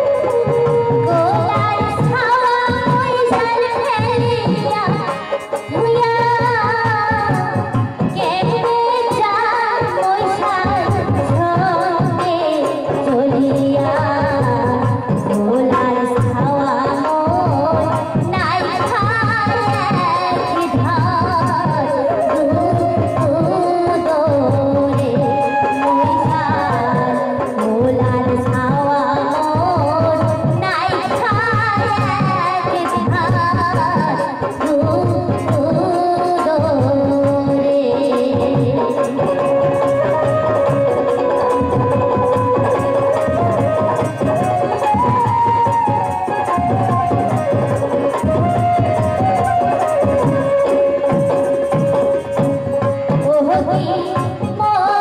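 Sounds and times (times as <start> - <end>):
drum rhythm: 0.0 - 55.0
instrumental accompaniment: 0.0 - 55.0
woman singing into a microphone: 0.0 - 55.0.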